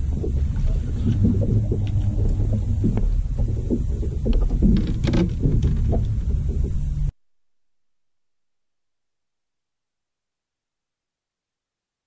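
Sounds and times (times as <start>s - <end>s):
boat engine rumble: 0.0s - 7.1s.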